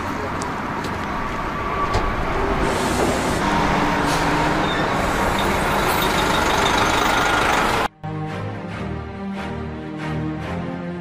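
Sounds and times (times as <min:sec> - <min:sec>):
bus diesel engine running: 0:00.0 - 0:07.9
road noise: 0:00.0 - 0:07.9.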